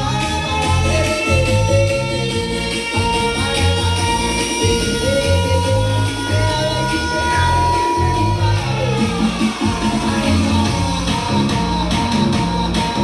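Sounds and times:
loud bass-heavy music: 0:00.0 - 0:13.0.

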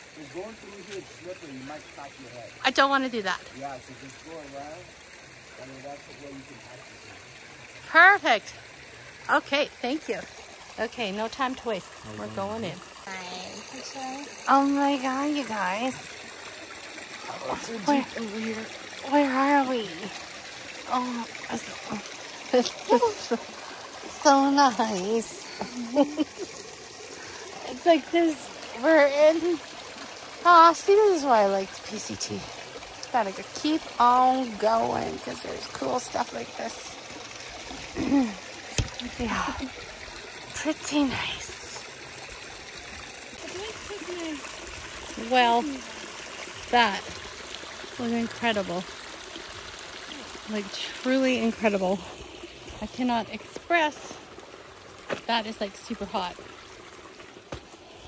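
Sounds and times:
water trickling: 0:00.0 - 0:58.0.

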